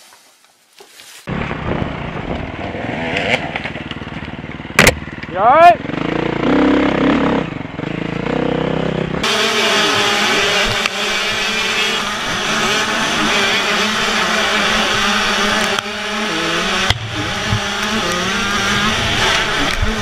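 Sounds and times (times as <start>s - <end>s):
dirt bike engine running: 1.3s - 20.0s
motocross bikes racing: 1.3s - 20.0s.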